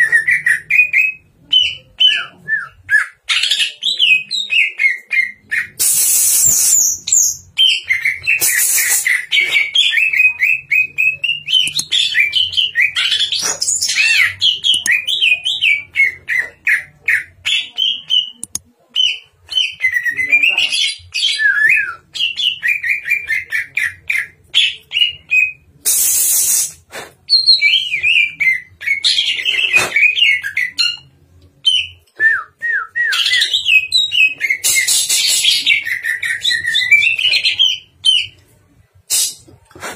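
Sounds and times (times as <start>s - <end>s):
short harsh noisy bursts: 25.8s - 27.1s.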